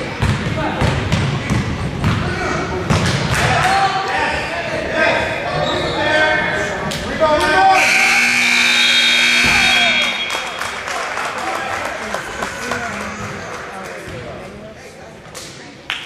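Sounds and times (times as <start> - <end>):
voices in echoing gym: 0.0 - 16.0
scoreboard horn blast: 7.8 - 10.7.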